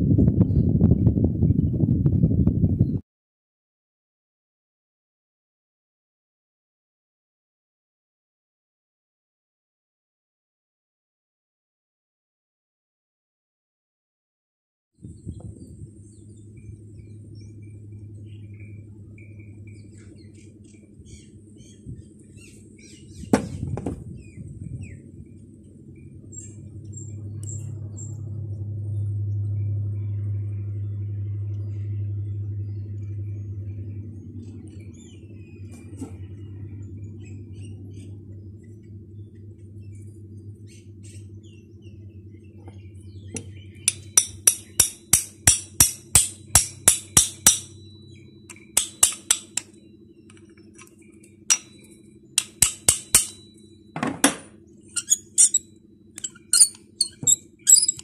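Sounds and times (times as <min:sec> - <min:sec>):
low hum: 0:00.0 - 0:03.0, 0:15.0 - 0:58.0
small hammer tapping metal: 0:43.4 - 0:47.9, 0:48.5 - 0:49.8, 0:51.5 - 0:53.6
metal parts clicking: 0:55.0 - 0:55.6, 0:56.2 - 0:58.0.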